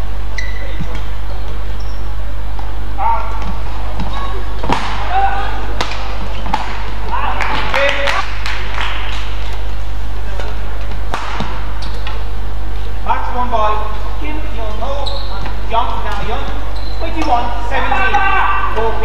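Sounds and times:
voices: 2.9s - 8.4s, 12.9s - 19.0s
racket hitting shuttlecock: 3.4s - 7.2s, 10.4s - 12.2s.

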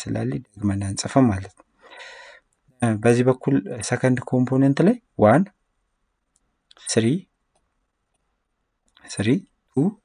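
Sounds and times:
faint clicks: 6.3s - 6.8s, 7.5s - 9.1s.

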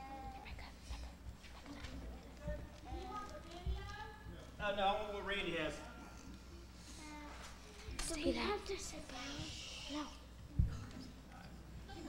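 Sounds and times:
murmur of children's voices: 0.0s - 4.4s, 6.0s - 12.0s
high-pitched child's voice: 8.0s - 10.3s.

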